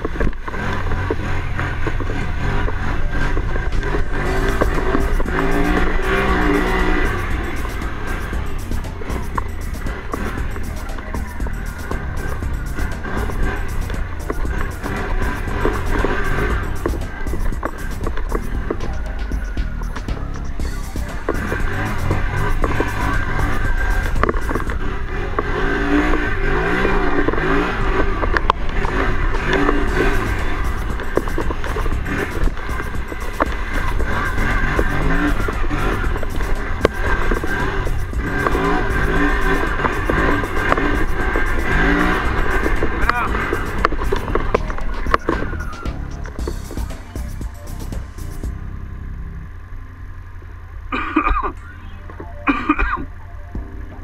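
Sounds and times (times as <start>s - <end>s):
quad engine running: 0.0s - 54.0s
music playing: 2.2s - 49.4s, 51.2s - 54.0s.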